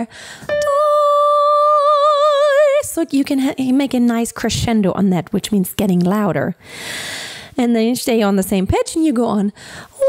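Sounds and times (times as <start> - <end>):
woman breathing in: 0.0 - 0.5, 6.6 - 7.6, 9.6 - 10.0
woman singing long high note: 0.5 - 2.8.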